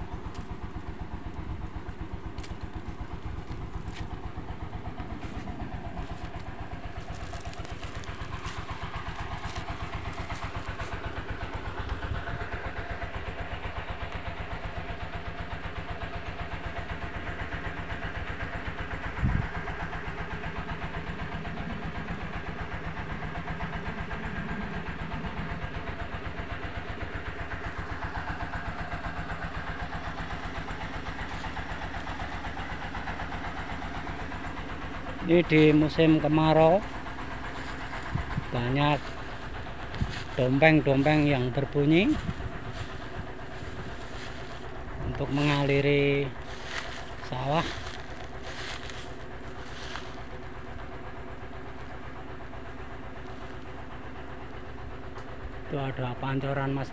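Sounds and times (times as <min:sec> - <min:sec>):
diesel water pump engines running: 0:00.0 - 0:56.9.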